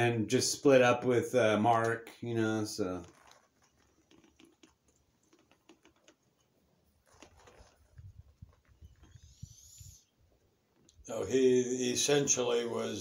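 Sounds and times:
faint small clicks: 3.0s - 10.0s.

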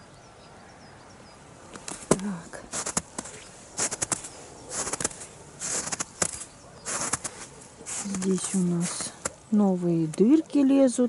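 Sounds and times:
footsteps crunching in snow: 1.7s - 10.4s.

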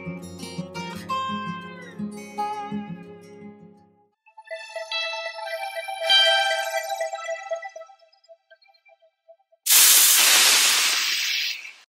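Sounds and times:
loud hissing sound effect: 9.7s - 11.9s.

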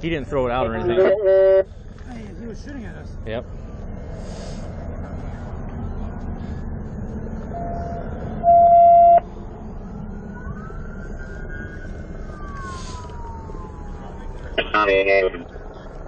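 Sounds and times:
man speaking: 0.0s - 1.2s, 14.6s - 15.5s
siren gliding up and down: 0.6s - 1.7s, 5.9s - 15.4s
loud electronic beep: 7.6s - 9.2s.

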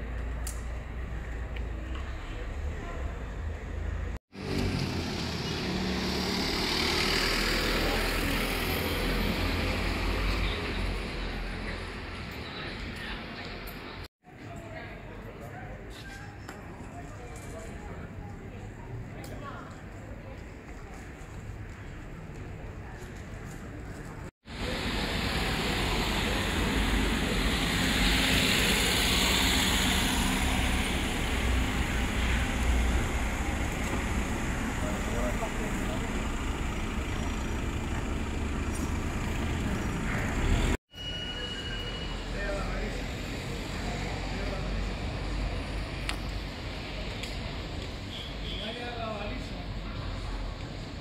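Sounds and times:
street ambience: 0.0s - 51.0s
cars driving past: 2.0s - 12.1s, 24.5s - 40.8s.

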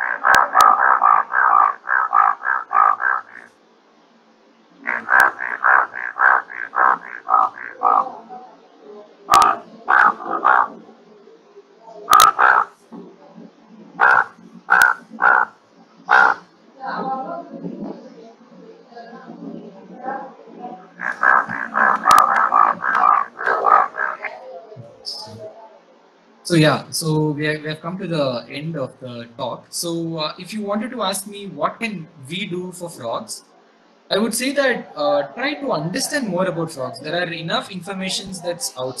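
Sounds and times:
bullfrog croaking: 0.0s - 3.6s, 4.8s - 8.3s, 9.3s - 10.8s, 12.1s - 12.8s, 14.0s - 16.5s, 20.8s - 24.7s.

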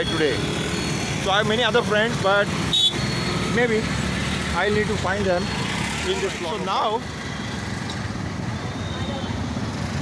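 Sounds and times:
road traffic rumble: 0.0s - 10.0s.

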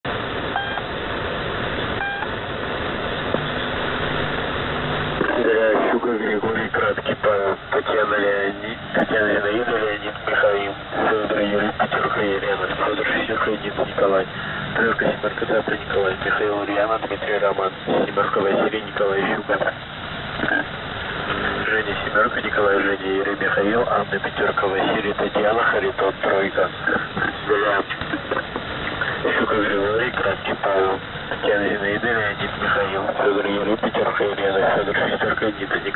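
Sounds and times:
low steady hum: 0.1s - 35.9s
static hiss: 0.1s - 35.9s
short beeps: 0.6s - 0.8s, 2.0s - 2.3s
man speaking over radio: 5.2s - 19.8s, 21.3s - 35.9s.

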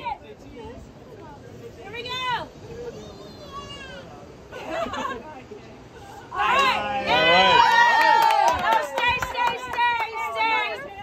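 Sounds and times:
excited shouts: 6.3s - 11.0s
people cheering and whooping: 6.3s - 11.0s
hand claps: 8.0s - 10.2s.

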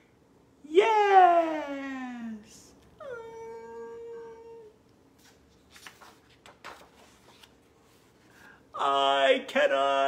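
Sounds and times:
book page turning: 5.1s - 8.5s.

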